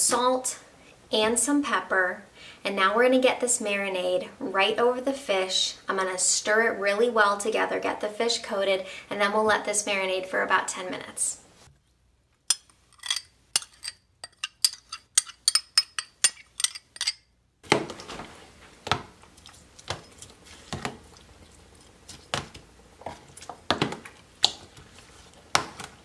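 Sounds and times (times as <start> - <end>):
metal spoon clinking on glass bowl: 12.5 - 17.2.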